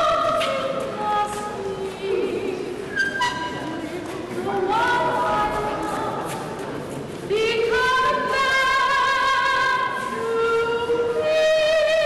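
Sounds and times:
woman singing opera vocal: 0.0 - 2.7, 4.4 - 6.2, 7.3 - 12.0.

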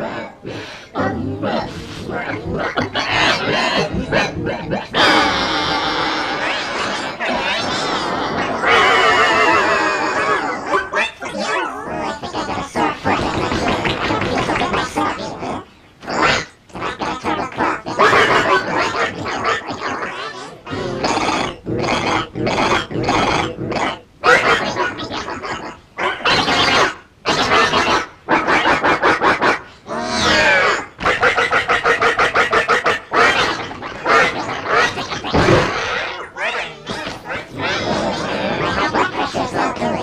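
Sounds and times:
rapid staccato vocal sounds: 0.0 - 8.8, 10.0 - 40.0
grunts and mumbled exclamations: 0.0 - 25.8, 33.0 - 40.0
distorted warbling voice muttering: 0.0 - 40.0.

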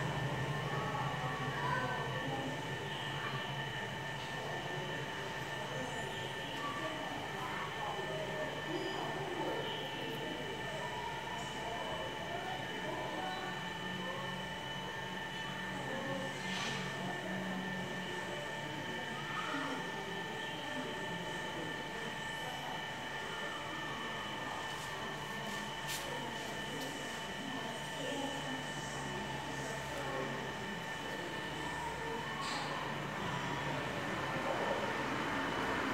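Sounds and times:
mechanical hum with high whine: 0.0 - 35.9.

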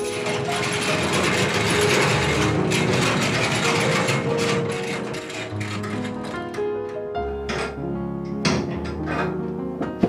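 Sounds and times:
metal gate rattling on track: 0.0 - 7.8.

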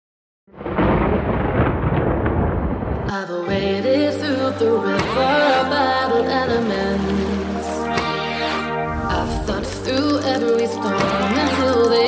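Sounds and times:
thunder-like rumbling: 0.5 - 4.4
electronic dance music: 7.7 - 12.0.

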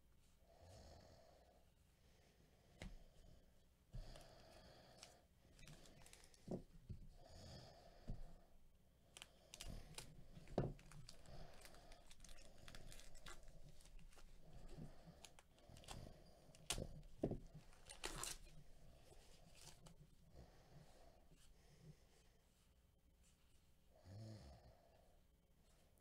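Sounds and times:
foil wrapper tearing and crinkling: 9.5 - 14.2, 17.6 - 18.5.

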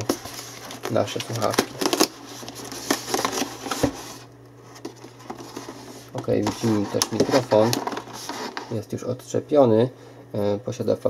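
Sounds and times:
cardboard and plastic rustling: 0.0 - 8.9.

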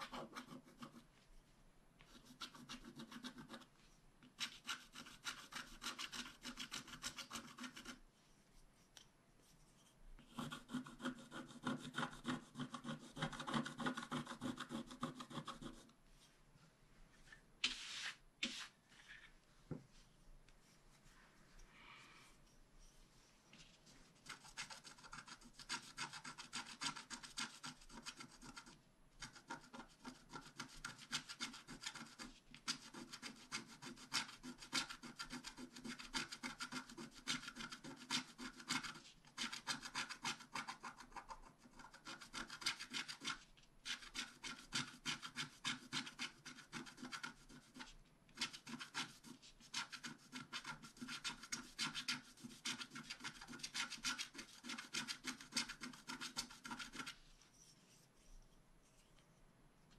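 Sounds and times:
stylus scratching coated sheet: 0.0 - 1.2, 2.0 - 16.4, 17.1 - 19.4, 22.5 - 59.2.

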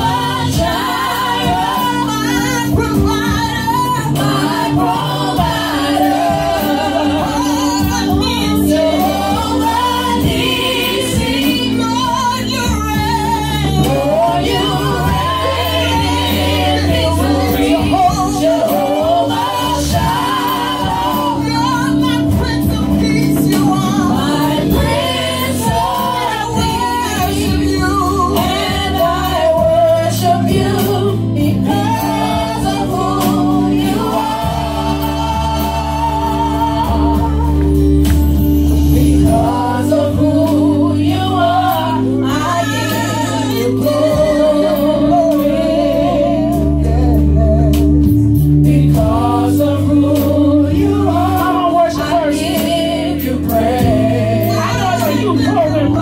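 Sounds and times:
instrumental accompaniment: 0.0 - 56.0
women singing gospel song: 0.0 - 56.0.

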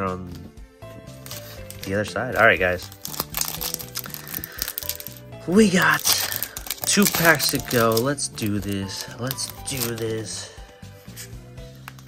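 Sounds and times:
background music: 0.0 - 12.0
foil wrapper crinkling: 1.2 - 10.5.

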